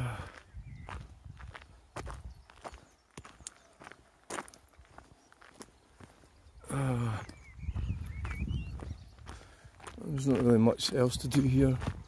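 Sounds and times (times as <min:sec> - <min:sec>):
footsteps through long grass: 0:00.3 - 0:06.5, 0:07.8 - 0:12.0.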